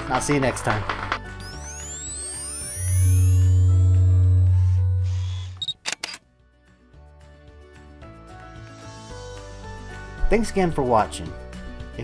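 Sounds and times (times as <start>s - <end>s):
soft background music: 0.0s - 12.0s
deep bass tone: 2.7s - 5.3s
camera shutter clicks: 5.6s - 6.2s.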